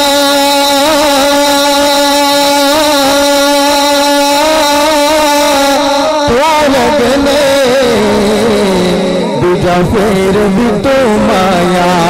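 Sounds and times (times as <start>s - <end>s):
man singing long note: 0.0s - 12.0s.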